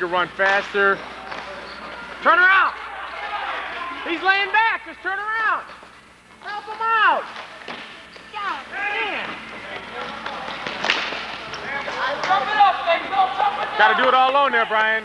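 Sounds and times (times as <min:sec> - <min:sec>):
spectators shouting: 0:02.0 - 0:04.6, 0:11.6 - 0:14.7.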